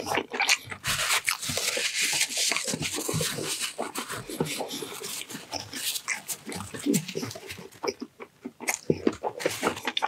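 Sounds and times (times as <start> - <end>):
chewing with mouth clicks: 0.0 - 10.0.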